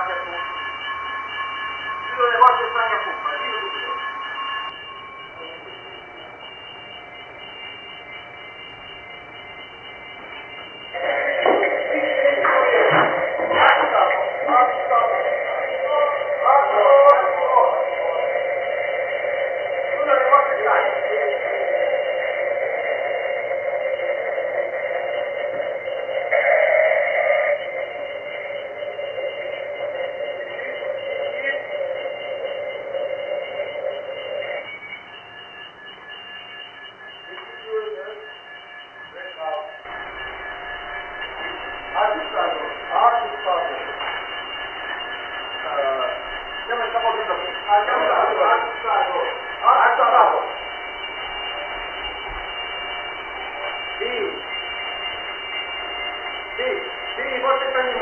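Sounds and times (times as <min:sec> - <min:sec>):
steady alarm tone: 0:00.0 - 0:58.0
voices talking: 0:00.0 - 0:58.0.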